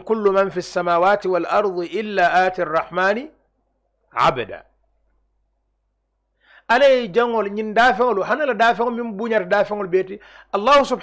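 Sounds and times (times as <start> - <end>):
man speaking into a microphone: 0.0 - 3.4, 4.1 - 4.7, 6.7 - 11.0.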